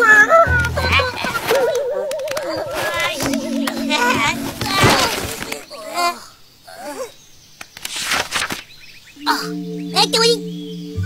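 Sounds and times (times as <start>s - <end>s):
squeaky chattering cartoon voices: 0.0s - 7.1s
wavering trilling tone: 2.8s - 5.6s, 9.2s - 11.0s.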